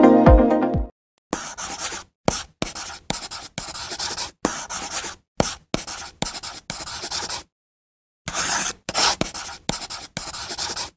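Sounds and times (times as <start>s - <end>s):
chalk scratching on a chalkboard: 1.3s - 7.5s, 8.3s - 10.9s.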